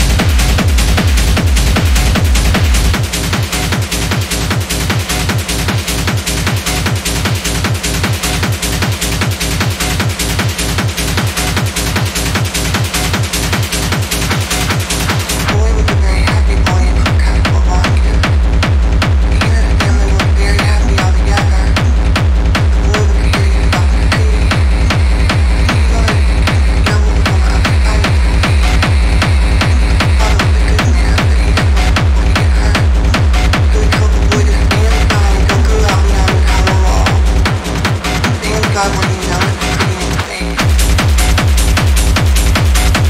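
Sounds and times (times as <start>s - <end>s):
heavy bass: 0.0s - 43.0s
kick drum beat: 0.0s - 43.0s.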